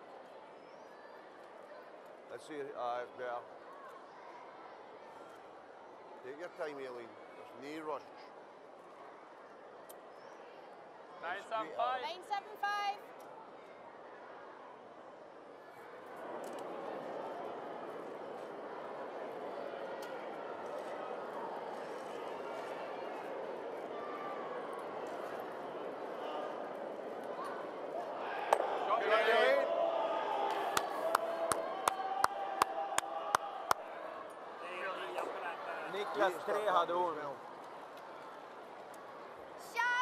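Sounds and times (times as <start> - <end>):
crowd murmuring and chattering: 0.0 - 40.0.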